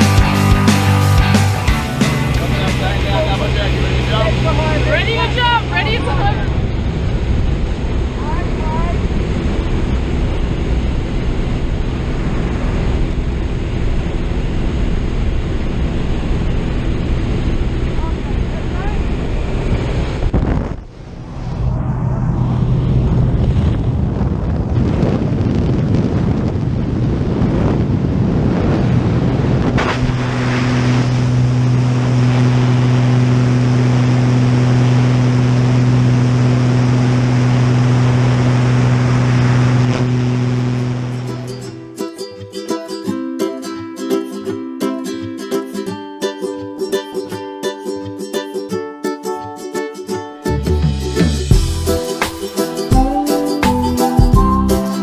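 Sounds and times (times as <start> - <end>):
light aircraft engine and propeller: 0.0 - 41.7
rush of air: 19.1 - 41.7.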